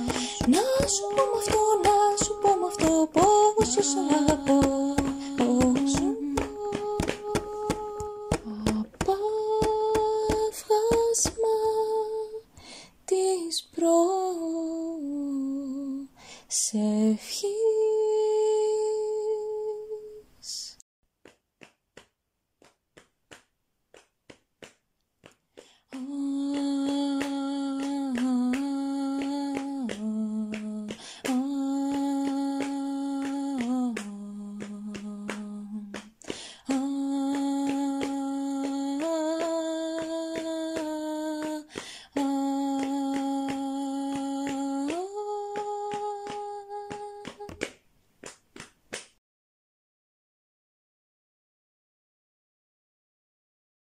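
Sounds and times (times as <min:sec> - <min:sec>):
woman humming: 0:00.0 - 0:10.5
sharp clicking beat: 0:00.0 - 0:11.4
sharp rhythmic clicks: 0:00.0 - 0:11.5, 0:21.3 - 0:49.0.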